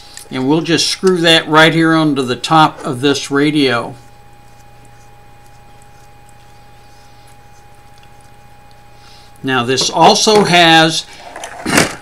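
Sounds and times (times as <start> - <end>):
high whine: 0.0 - 11.3
faint electrical hum: 0.0 - 12.0
antenna ticking as twisted: 4.0 - 9.5.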